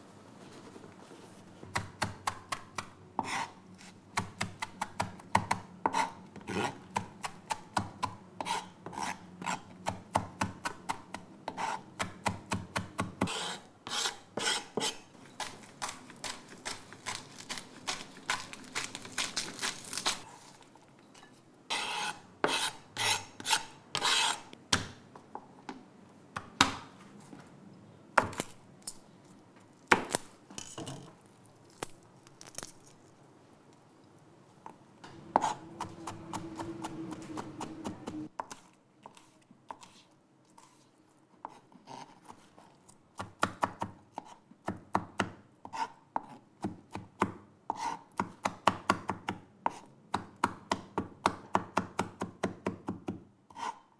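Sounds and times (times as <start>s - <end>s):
knife chopping on plastic board: 43.2s - 53.7s.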